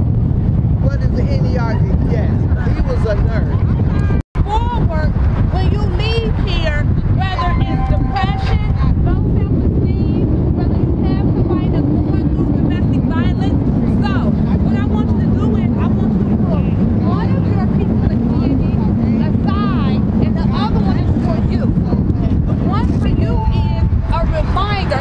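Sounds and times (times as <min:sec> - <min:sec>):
steady low drone: 0:00.0 - 0:25.0
wind rumbling on microphone: 0:00.0 - 0:25.0.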